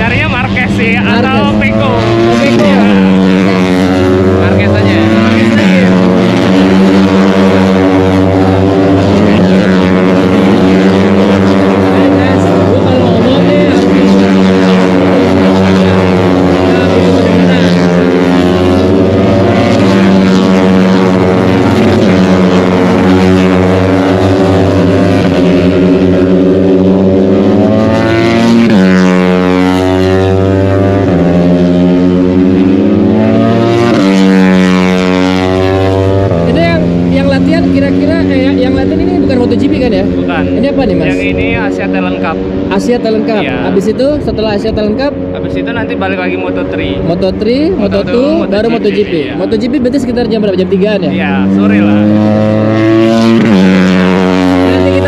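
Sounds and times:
racing motorcycle engines: 0.0 - 55.0.

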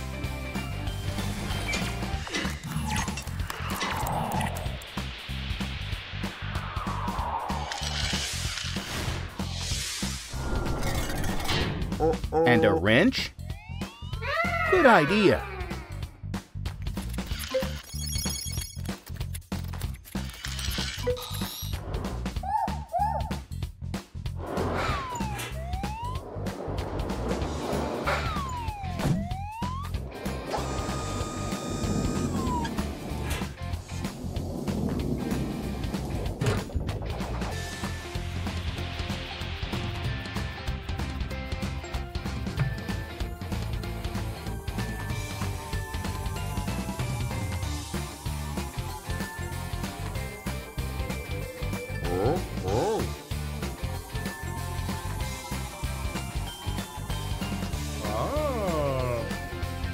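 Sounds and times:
cartoon background music: 10.4 - 34.2, 35.0 - 59.9.

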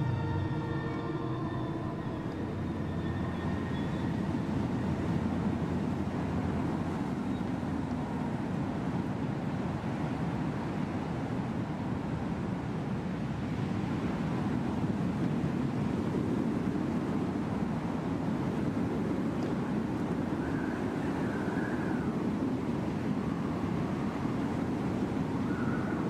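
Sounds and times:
eerie music tones: 0.0 - 7.3
low rumbling drone: 0.0 - 8.8.

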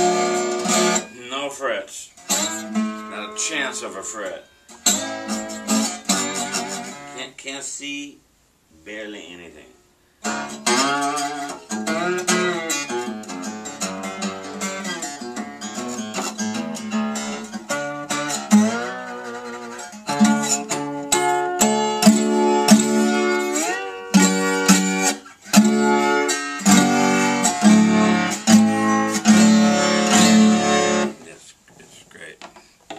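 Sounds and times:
slide guitar playing: 0.0 - 7.3, 10.2 - 31.2.

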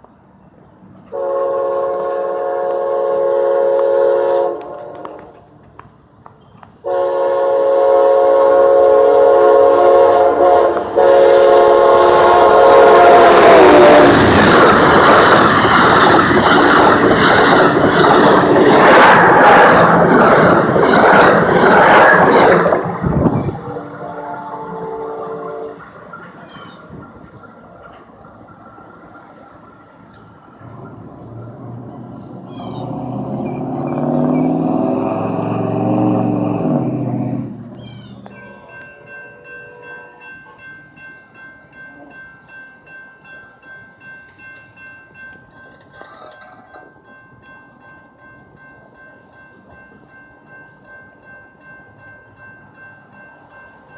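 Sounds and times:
quiet train rumble: 0.0 - 53.9
train rushing and clattering by: 0.0 - 53.9
locomotive multi-chime horn: 1.1 - 5.4, 6.8 - 14.4, 22.4 - 27.0, 38.2 - 53.9.

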